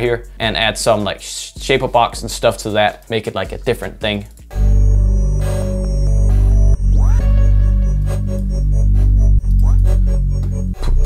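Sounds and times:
electronic beat with heavy bass: 0:00.0 - 0:11.0
synth chords: 0:04.4 - 0:11.0
rising synth sweep: 0:04.5 - 0:11.0.

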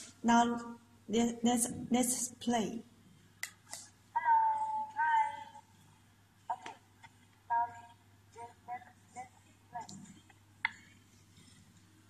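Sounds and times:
high thin recorded voice: 0:04.1 - 0:05.7, 0:07.5 - 0:10.3.

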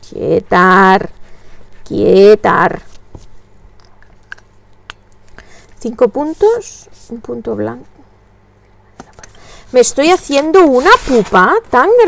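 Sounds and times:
paper rustling: 0:10.0 - 0:11.6.

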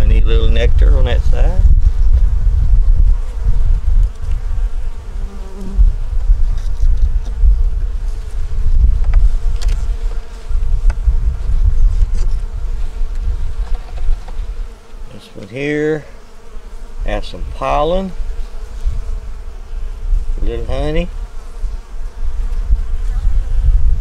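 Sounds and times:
wind rumbling on microphone: 0:00.0 - 0:15.1, 0:16.7 - 0:24.0
honey bees buzzing: 0:00.0 - 0:24.0.

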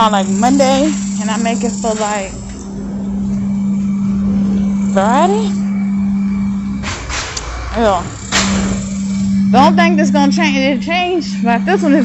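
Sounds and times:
low rumble: 0:00.0 - 0:12.0
machine hum with held tone: 0:00.0 - 0:12.0.

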